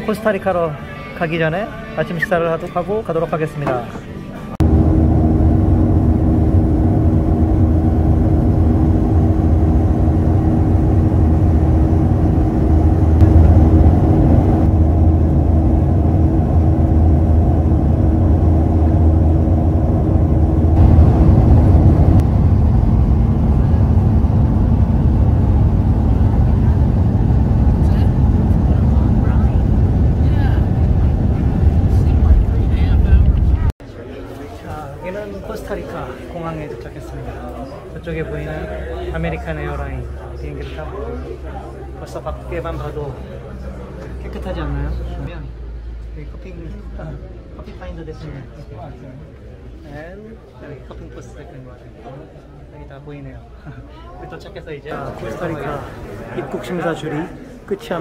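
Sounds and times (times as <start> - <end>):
airliner cabin drone: 3.9 - 33.8
low hums: 4.4 - 33.8.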